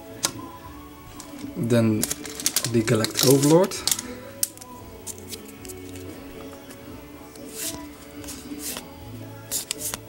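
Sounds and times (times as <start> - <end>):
quiet background music: 0.0 - 10.0
trading cards handled ticking: 1.1 - 8.9, 9.5 - 10.0.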